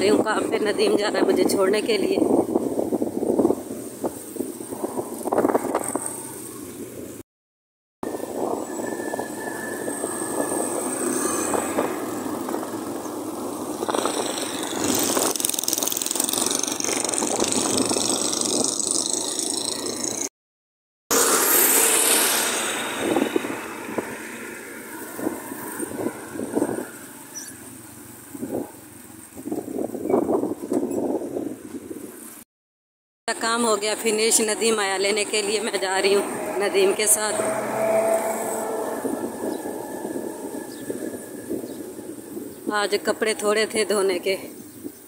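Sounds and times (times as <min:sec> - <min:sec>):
road noise: 0:00.0 - 0:07.2, 0:08.0 - 0:20.3, 0:21.1 - 0:32.5, 0:33.3 - 0:45.0
street traffic: 0:00.0 - 0:07.2, 0:08.0 - 0:20.3, 0:21.1 - 0:32.5, 0:33.3 - 0:45.0
wind rush: 0:00.0 - 0:07.2, 0:08.0 - 0:20.2, 0:21.1 - 0:32.2, 0:36.2 - 0:43.8
tractor engine running alongside: 0:08.0 - 0:20.3, 0:21.1 - 0:29.8.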